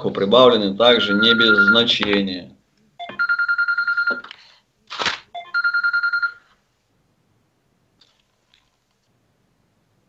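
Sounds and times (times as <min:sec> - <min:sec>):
telephone ringing electronic trill: 0:01.0 - 0:01.9, 0:03.0 - 0:04.2, 0:05.4 - 0:06.4.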